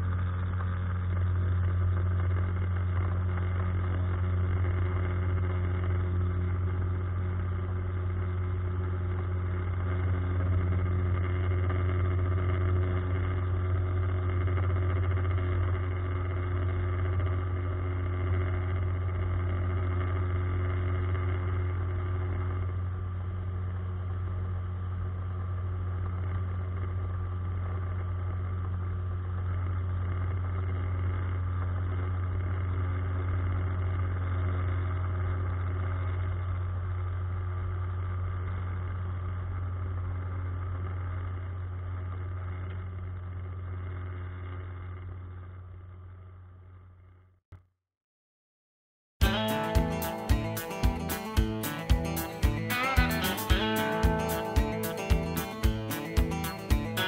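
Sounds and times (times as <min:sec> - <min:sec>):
outboard motor droning: 0:00.0 - 0:46.0.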